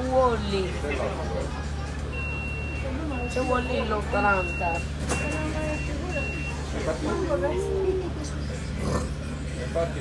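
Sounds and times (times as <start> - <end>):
electronic warning beeps: 2.1 - 6.7.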